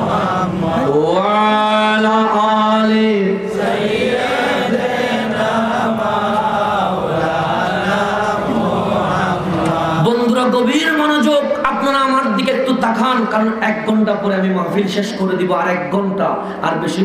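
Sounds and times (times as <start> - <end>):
men chanting together: 0.0 - 10.6.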